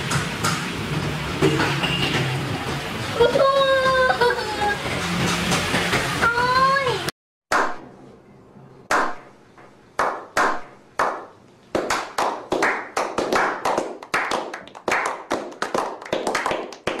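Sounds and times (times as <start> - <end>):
group clapping quickly: 10.0 - 17.0
hand claps with echo: 10.0 - 17.0.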